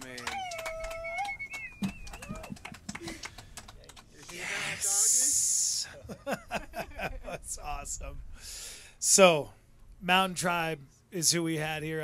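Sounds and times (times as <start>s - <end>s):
person whooping: 0.0s - 3.3s, 4.3s - 5.6s.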